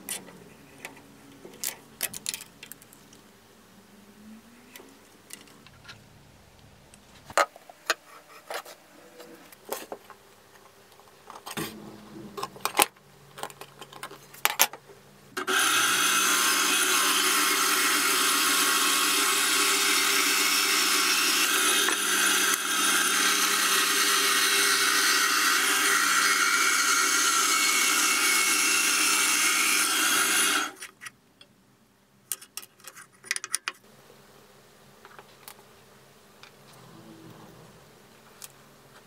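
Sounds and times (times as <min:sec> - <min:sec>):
bandsaw cutting wood: 0:15.4 - 0:30.9.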